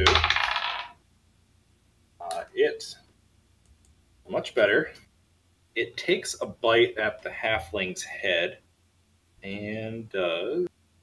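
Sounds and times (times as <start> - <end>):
dice rattling on hard surface: 0.0 - 1.0.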